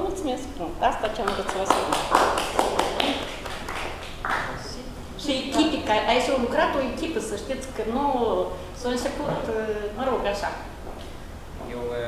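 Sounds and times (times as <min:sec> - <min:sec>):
small group applauding: 0:01.2 - 0:04.8.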